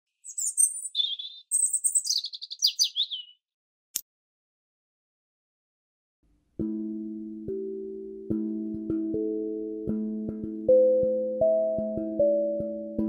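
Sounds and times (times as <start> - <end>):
bird chirps and trills: 0.1 - 3.4.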